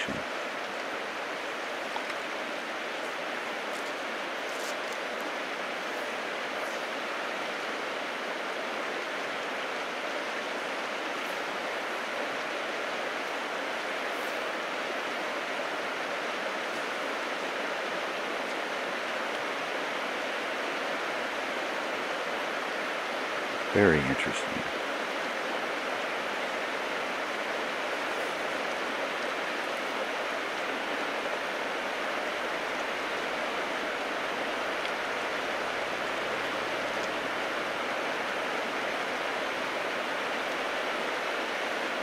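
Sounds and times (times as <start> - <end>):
river water rushing: 0.0 - 42.0.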